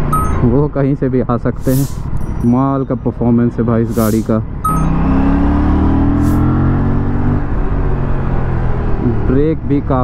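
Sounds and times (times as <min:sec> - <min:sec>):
motorcycle engine accelerating: 0:04.7 - 0:09.3.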